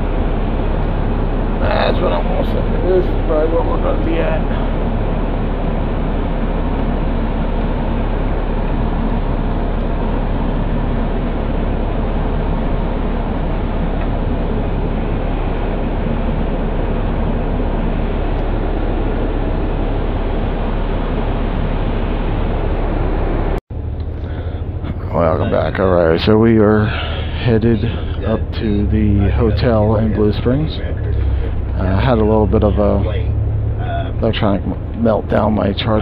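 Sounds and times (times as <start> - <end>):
bus engine and road noise: 0.0 - 36.0.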